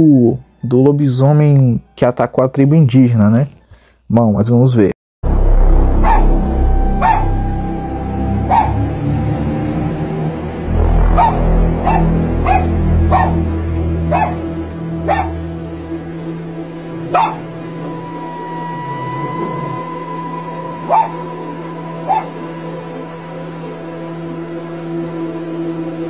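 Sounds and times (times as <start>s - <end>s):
background music: 0.0s - 4.1s, 5.2s - 26.0s
dog barking: 6.0s - 6.3s, 7.0s - 7.3s, 8.5s - 8.8s, 11.2s - 13.4s, 14.1s - 14.4s, 15.1s - 15.4s, 17.1s - 17.5s, 20.9s - 21.2s, 22.1s - 22.4s.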